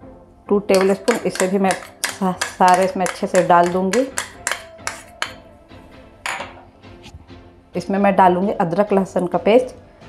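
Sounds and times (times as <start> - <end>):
soft background music: 0.0 - 10.0
spoon clinking against bowl: 0.7 - 5.5, 6.3 - 6.6.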